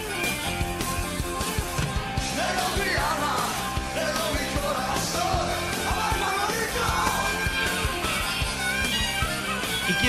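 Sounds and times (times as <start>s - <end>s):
rock song with vocals: 0.0s - 10.0s.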